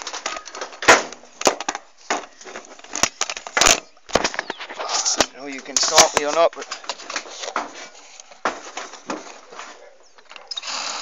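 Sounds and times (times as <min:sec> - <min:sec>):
rustling handling noise: 0:00.0 - 0:10.5.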